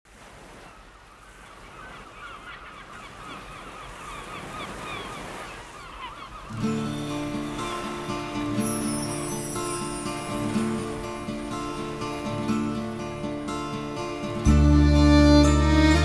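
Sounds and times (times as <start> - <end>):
bird calls: 0.5 - 9.1.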